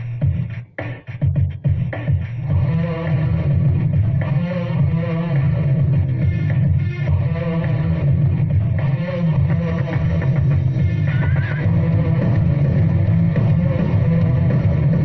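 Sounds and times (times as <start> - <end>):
rock band music: 0.0 - 15.0.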